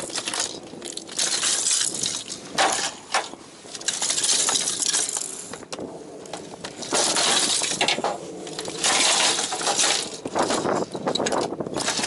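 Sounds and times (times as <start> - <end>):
plastic lures and hooks clattering: 0.0 - 5.8, 6.6 - 12.0.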